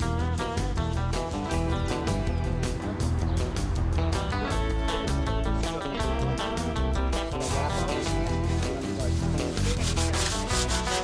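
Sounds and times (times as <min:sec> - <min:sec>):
background music: 0:00.0 - 0:11.0
sandpaper rubbing on wood: 0:07.4 - 0:11.0.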